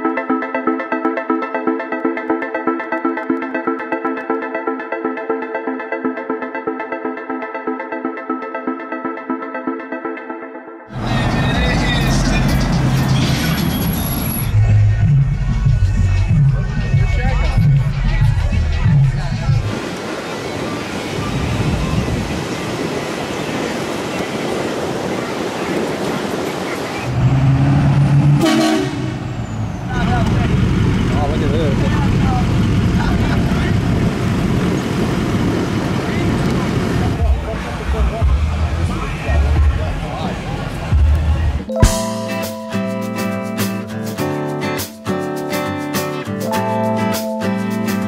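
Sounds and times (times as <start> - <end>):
truck engine drone: 10.9 - 22.1, 25.7 - 43.4
road noise: 10.9 - 41.7
vehicle horn: 28.4 - 29.3
truck engine driving through sand: 29.0 - 41.6.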